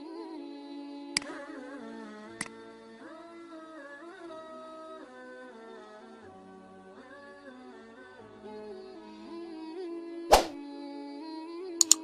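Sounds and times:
background music melody: 0.0s - 12.0s.

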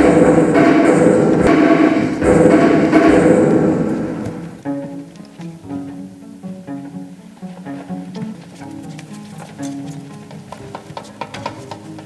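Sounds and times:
heavy percussion strokes: 0.0s - 5.3s
low droning strings and electronics: 0.0s - 10.3s.

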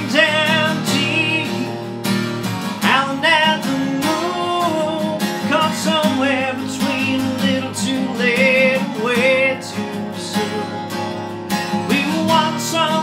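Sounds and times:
strummed acoustic guitar: 0.0s - 13.0s.

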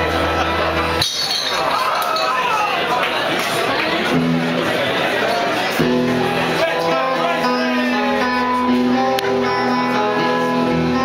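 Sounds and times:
live rock band: 0.0s - 1.8s, 4.1s - 11.0s.

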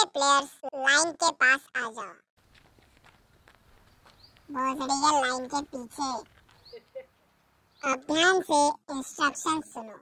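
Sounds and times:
faint footsteps: 2.4s - 7.6s.

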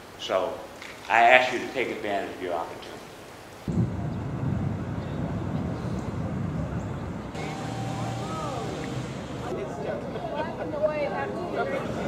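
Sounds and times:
street traffic rumble: 3.7s - 12.0s
faint rising and falling tones: 7.3s - 9.5s
steady hum: 7.3s - 9.6s.

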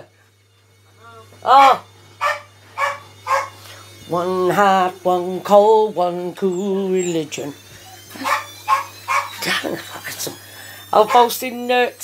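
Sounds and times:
dog barking: 2.2s - 3.6s, 8.2s - 9.4s.

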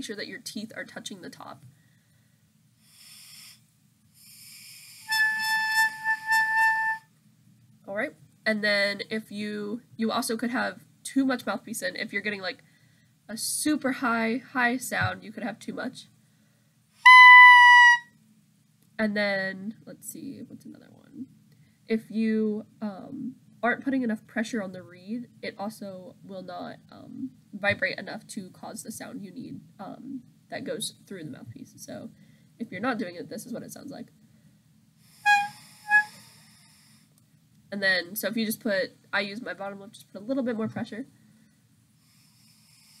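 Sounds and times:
breathy air through clarinet mouthpiece: 2.8s - 3.6s, 35.1s - 37.0s
clarinet mouthpiece high note: 5.1s - 7.0s, 17.0s - 18.1s, 35.3s - 36.2s
short reed tones: 17.0s - 18.0s, 35.2s - 36.2s.

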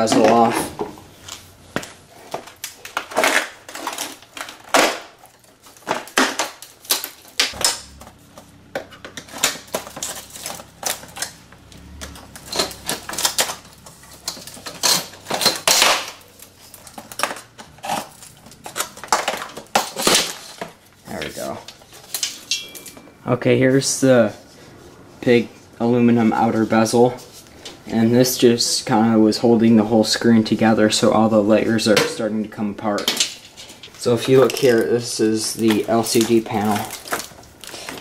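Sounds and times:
metal frame clicking and rattling: 2.5s - 23.2s.

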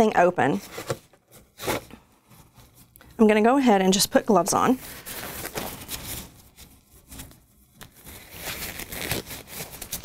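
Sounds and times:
rubber gloves rustling and stretching: 0.6s - 3.2s, 4.4s - 10.0s.

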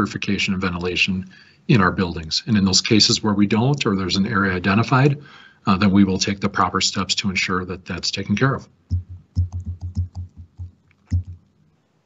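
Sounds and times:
computer keyboard typing: 8.9s - 11.5s.

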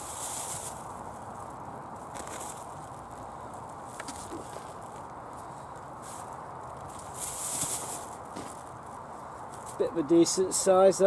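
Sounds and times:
plastic bag crinkling: 0.0s - 5.1s, 6.0s - 9.0s
hands rummaging through compost: 2.1s - 3.2s, 6.0s - 8.8s.

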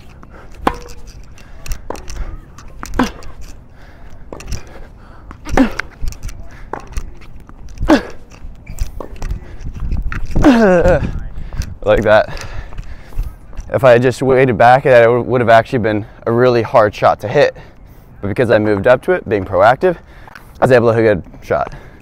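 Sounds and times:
racket striking tennis ball: 0.0s - 3.4s, 5.3s - 9.4s
distant ball bounces and hits: 0.5s - 3.4s.

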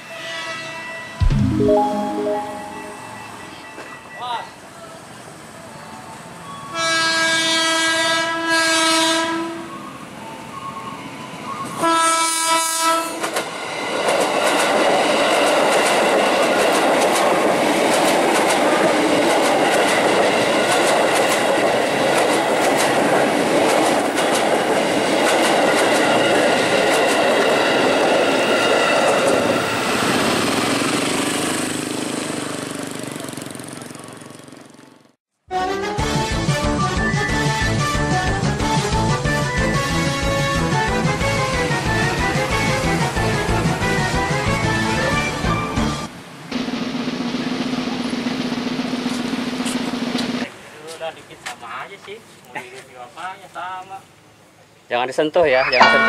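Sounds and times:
train horn blasts: 0.0s - 1.2s, 6.7s - 9.8s, 11.8s - 13.2s.

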